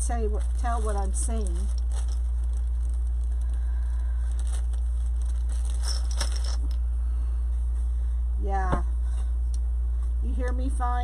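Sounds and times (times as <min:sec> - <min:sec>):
ribbon and plastic crinkling: 0:00.0 - 0:06.8
steady low hum: 0:00.0 - 0:11.0.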